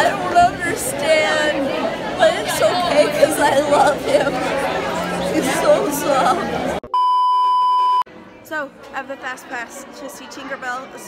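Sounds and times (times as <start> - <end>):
chatter of people: 0.0 - 6.9, 8.1 - 11.0.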